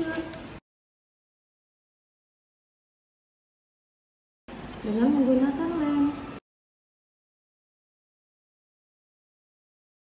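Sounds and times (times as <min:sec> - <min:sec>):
woman speaking: 0:00.0 - 0:00.5, 0:04.8 - 0:06.4.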